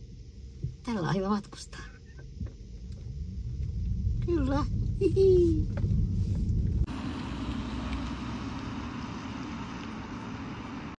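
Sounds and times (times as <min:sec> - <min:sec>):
tyres rolling on asphalt: 0:05.6 - 0:11.0.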